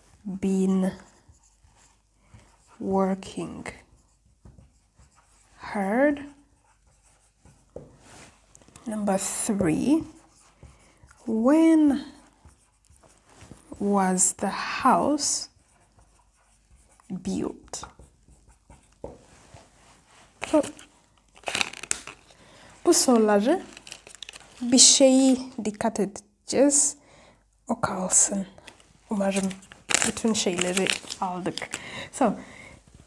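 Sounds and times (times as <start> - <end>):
marker writing on whiteboard: 0.5 - 8.1, 9.1 - 19.7
paper crinkling: 20.4 - 24.9, 28.6 - 32.0.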